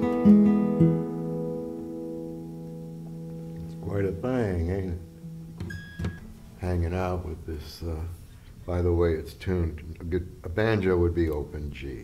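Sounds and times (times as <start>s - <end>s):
plucked strings ringing: 0.0s - 6.4s.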